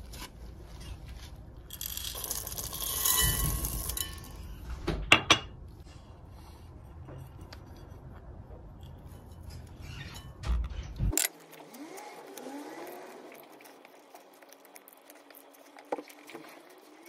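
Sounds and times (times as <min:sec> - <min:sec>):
faint squeaks: 0:08.9 - 0:11.1
dough squishing: 0:11.2 - 0:17.0.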